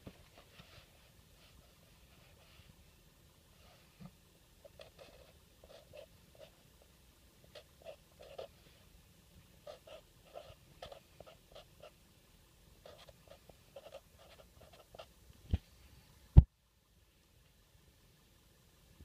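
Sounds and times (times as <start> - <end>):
felt-tip marker scratching on cardboard: 4.7 - 6.6, 7.5 - 8.6, 9.6 - 12.0, 12.8 - 15.1.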